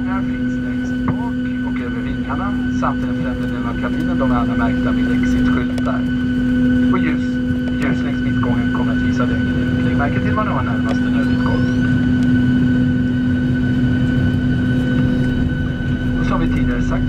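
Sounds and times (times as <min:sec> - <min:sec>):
aircraft cabin drone: 0:00.0 - 0:17.0.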